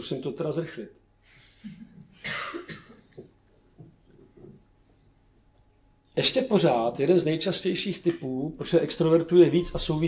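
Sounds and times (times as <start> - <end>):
person coughing: 1.7 - 3.2.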